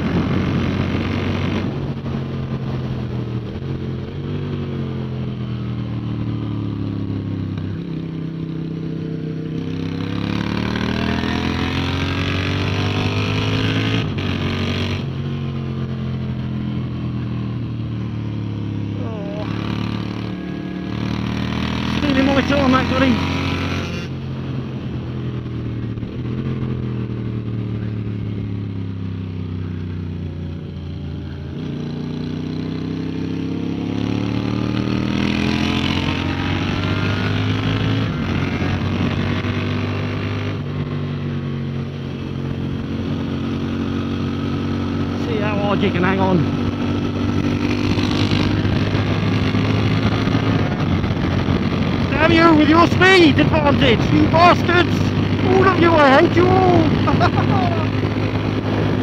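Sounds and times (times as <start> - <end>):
wind rushing over camera: 0.0 - 4.6, 46.4 - 59.0
motorcycle engine revving: 0.0 - 59.0.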